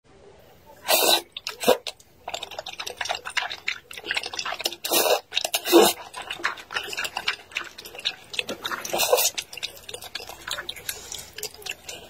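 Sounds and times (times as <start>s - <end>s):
slurping noodles: 0.8s - 12.0s
wet sucking and chewing smacks: 0.9s - 12.0s.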